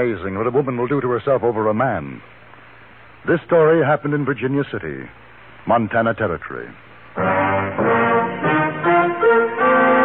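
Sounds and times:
trumpet-led brass music: 7.2s - 10.0s.

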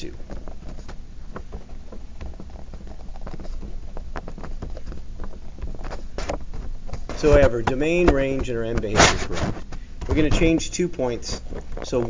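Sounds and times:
steady low hum: 0.0s - 12.0s
pen scratching on paper: 1.7s - 9.7s.

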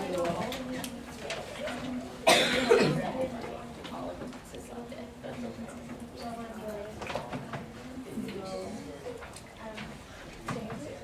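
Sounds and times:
low chatter of voices: 0.0s - 11.0s
person coughing: 2.2s - 3.0s.

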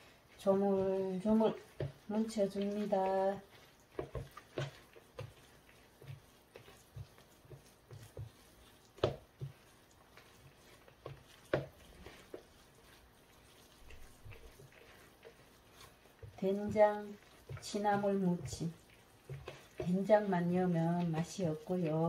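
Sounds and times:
hand squishing food paste: 0.0s - 22.0s.

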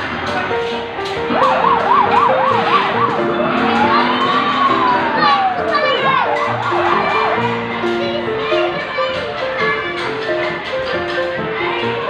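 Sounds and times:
background music with steady beat: 0.0s - 12.0s
toy fire truck siren: 1.3s - 7.5s.

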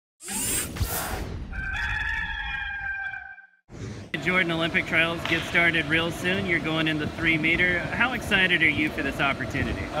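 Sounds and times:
rooster crowing: 1.5s - 3.5s.

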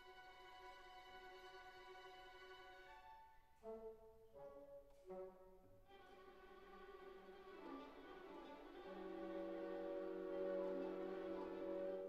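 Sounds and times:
orchestral brass held notes: 3.6s - 12.0s.

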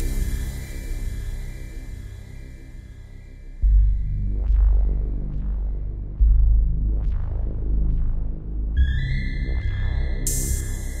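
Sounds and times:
electronic music with pulsing bass: 0.0s - 11.0s.

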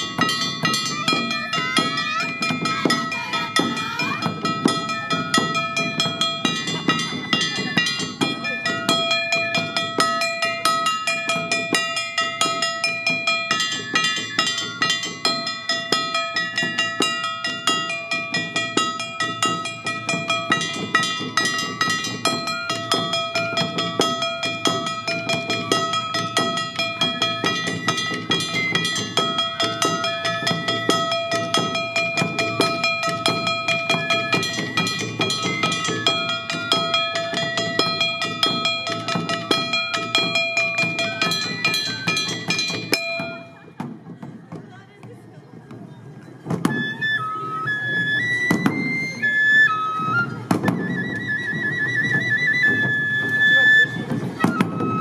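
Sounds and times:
hand gong clanging: 0.0s - 43.6s
bamboo flute melody: 0.0s - 43.8s, 46.3s - 55.0s
taiko drums beating: 0.0s - 55.0s.

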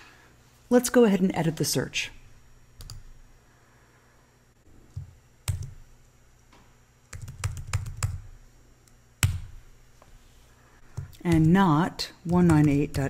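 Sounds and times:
computer keyboard typing: 2.8s - 3.0s, 5.0s - 5.8s, 7.1s - 8.3s, 10.9s - 13.0s.

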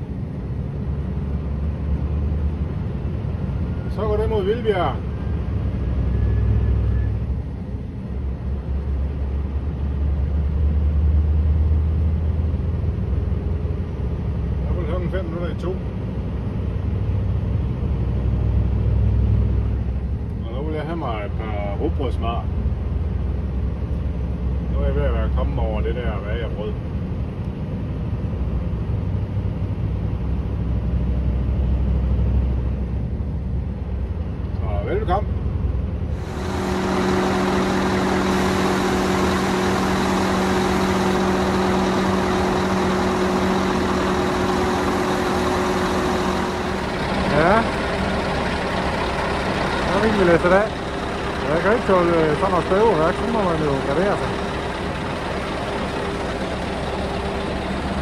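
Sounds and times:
truck engine rumble: 0.0s - 58.0s.

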